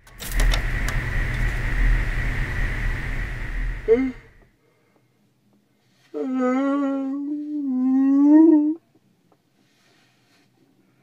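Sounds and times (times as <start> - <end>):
clicks: 0.0 - 1.7
steady high tone: 0.0 - 4.5
low hum: 0.0 - 4.6.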